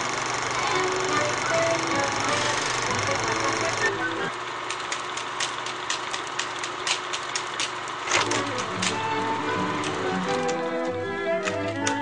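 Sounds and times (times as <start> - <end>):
film projector whirring and clicking: 0.0 - 12.0
music: 0.6 - 4.3, 8.2 - 12.0.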